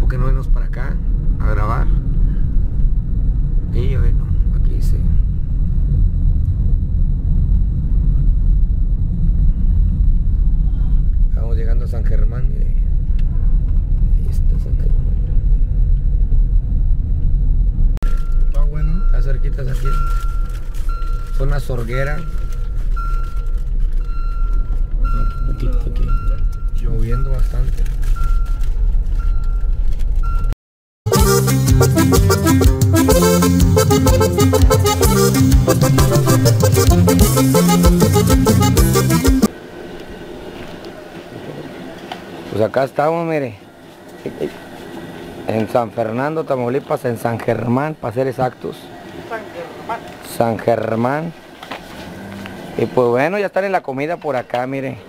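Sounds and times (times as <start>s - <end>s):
car interior road rumble: 0.0s - 30.5s
high electronic beep: 18.0s - 28.6s.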